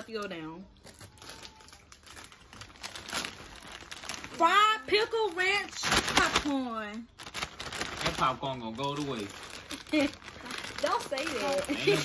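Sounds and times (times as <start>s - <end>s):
plastic snack bag crinkling: 0.0s - 12.0s.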